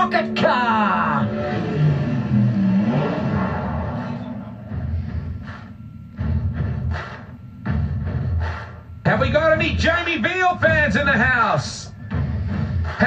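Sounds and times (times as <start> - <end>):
race cars rumbling on tv speakers: 0.5 - 7.2.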